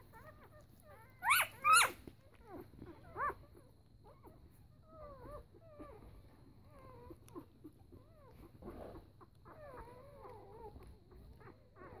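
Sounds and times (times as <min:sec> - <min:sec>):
puppies squeaking and whimpering: 0:00.0 - 0:12.0.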